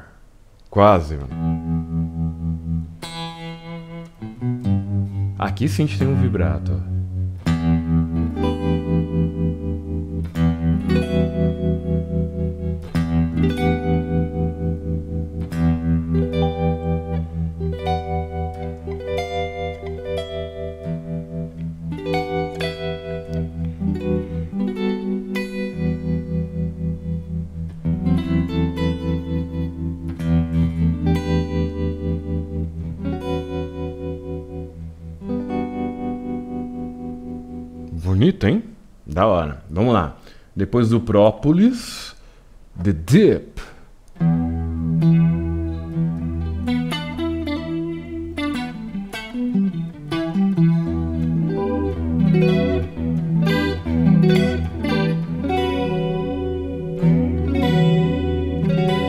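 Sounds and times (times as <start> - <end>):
electric guitar with vibrato: 1.3 - 38.2, 44.2 - 59.0.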